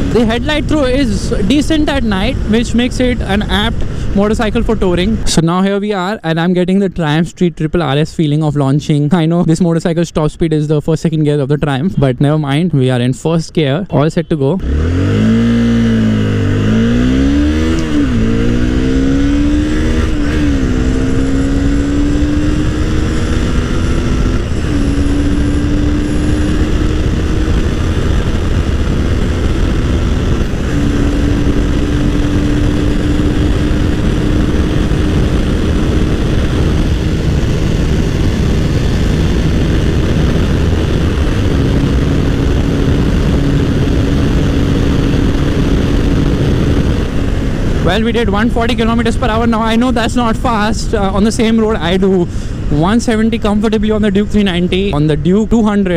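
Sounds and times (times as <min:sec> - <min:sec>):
motorcycle engine accelerating hard: 0:00.0 - 0:05.3, 0:14.6 - 0:55.9
heavy wind rush: 0:00.0 - 0:55.9.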